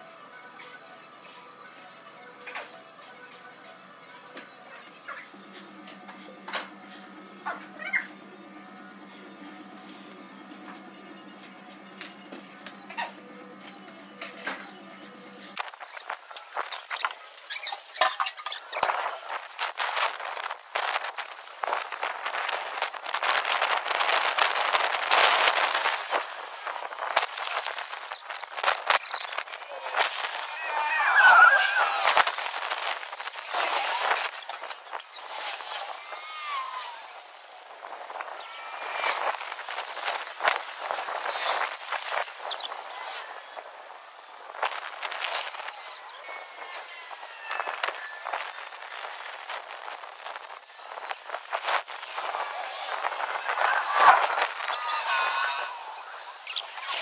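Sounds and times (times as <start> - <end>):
outdoor noise: 0.0 - 57.0.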